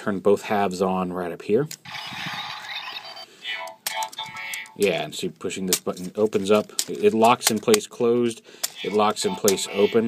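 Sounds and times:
tinny electronic toy sound effects: 0:01.8 - 0:04.8, 0:08.6 - 0:10.0.

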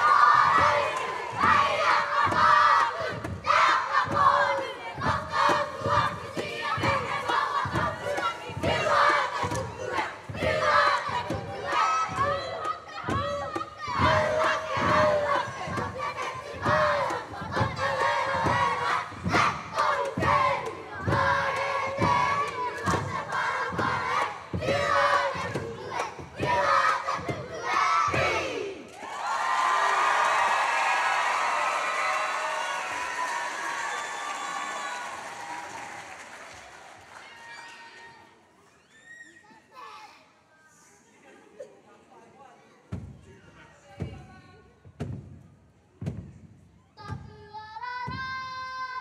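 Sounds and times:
stamping and slapping beat: 0:00.0 - 0:28.8
children chanting and shouting: 0:00.0 - 0:35.8, 0:46.9 - 0:49.0
audience cheering and applauding: 0:28.9 - 0:38.3.

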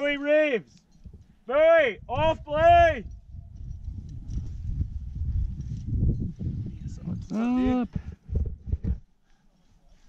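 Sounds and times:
wind buffeting microphone: 0:01.0 - 0:09.2.

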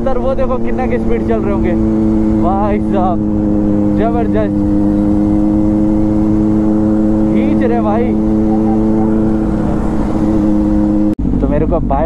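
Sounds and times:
man talking: 0:00.0 - 0:01.8, 0:02.4 - 0:03.2, 0:03.9 - 0:04.6, 0:07.3 - 0:08.2, 0:11.4 - 0:12.0
motorcycle engine cruising: 0:00.0 - 0:12.0
wind rush on microphone: 0:00.6 - 0:11.4.

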